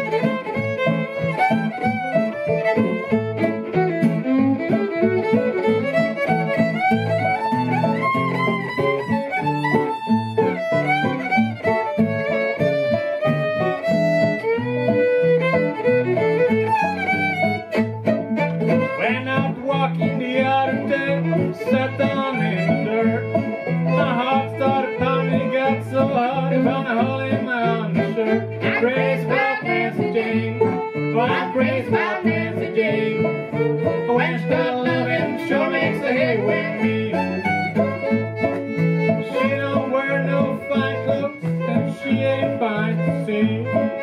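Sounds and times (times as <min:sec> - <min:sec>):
acoustic guitar bass notes: 0:00.0 - 0:44.0
banjo: 0:00.0 - 0:44.0
bowed fiddle: 0:00.0 - 0:44.0.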